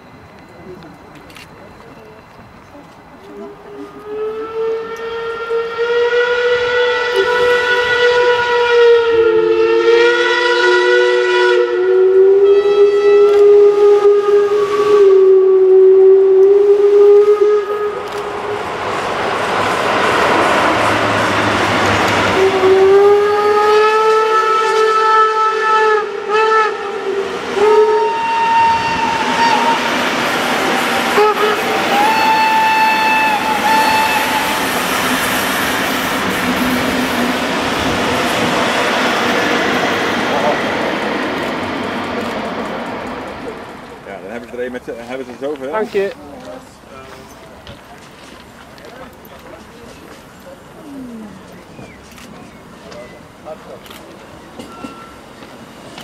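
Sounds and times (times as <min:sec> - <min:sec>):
locomotive rushing past: 0:00.0 - 0:56.0
steam locomotive whistle: 0:03.6 - 0:18.7, 0:22.2 - 0:38.6.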